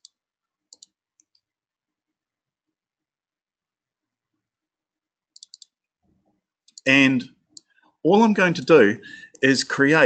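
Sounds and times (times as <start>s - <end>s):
computer mouse clicks: 0.0s - 1.5s, 5.3s - 5.8s, 6.6s - 6.9s.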